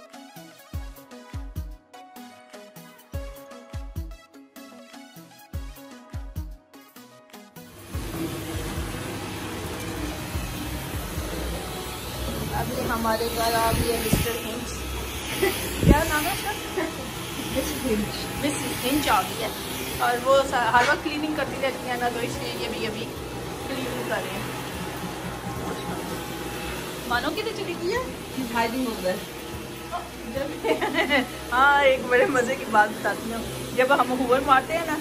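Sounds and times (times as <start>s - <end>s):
vacuum cleaner running: 7.7s - 35.0s.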